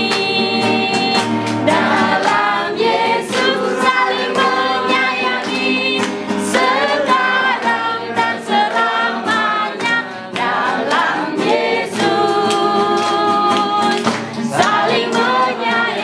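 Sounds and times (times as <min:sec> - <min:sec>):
group singing: 0:00.0 - 0:16.0
hands clapping in time: 0:00.0 - 0:16.0.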